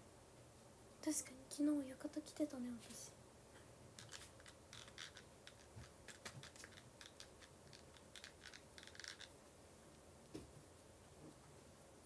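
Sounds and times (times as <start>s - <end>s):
scratching of makeup application: 3.9s - 9.4s.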